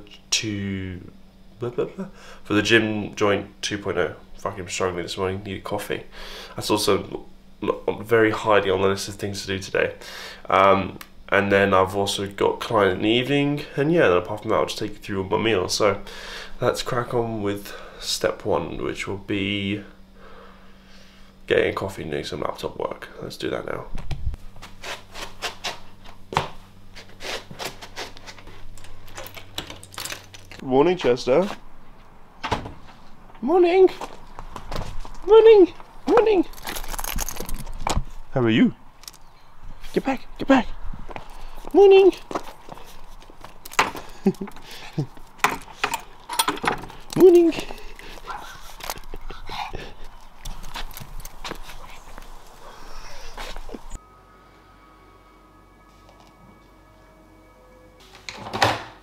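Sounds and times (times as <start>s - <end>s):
rustling and handling: 24.0s - 30.6s, 31.4s - 38.3s, 41.0s - 54.0s
dog vocal sounds: 47.6s - 50.7s, 51.4s - 53.9s
faint steady tones: 52.0s - 58.1s.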